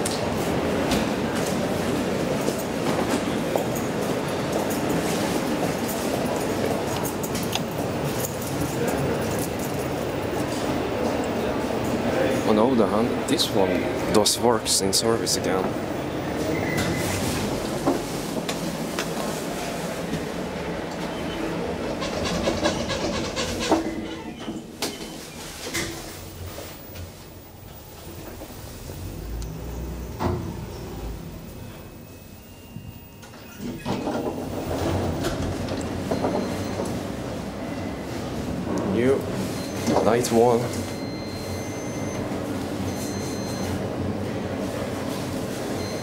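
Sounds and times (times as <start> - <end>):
background noise: 0.0 - 46.0
elevator car rumbling: 0.0 - 46.0.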